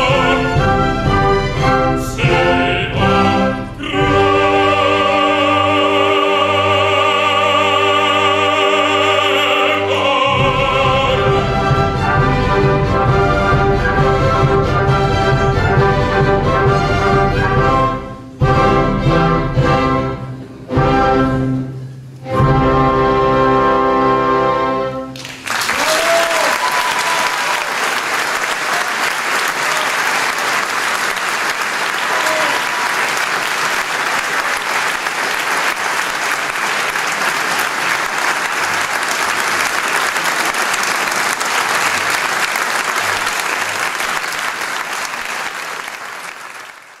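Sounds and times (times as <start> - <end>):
audience applauding: 25.2 - 47.0.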